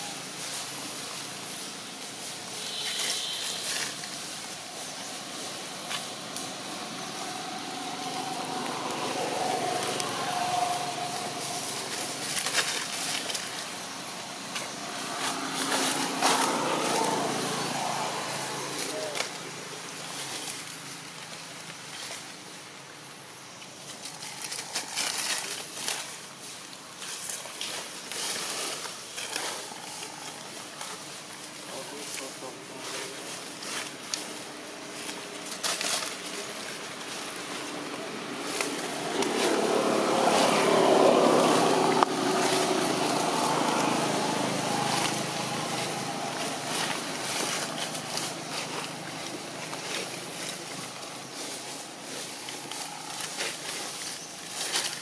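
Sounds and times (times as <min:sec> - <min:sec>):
vehicle passing by: 0:00.0 - 0:22.3, 0:27.6 - 0:55.0
dry leaves crackling and rustling: 0:00.0 - 0:55.0.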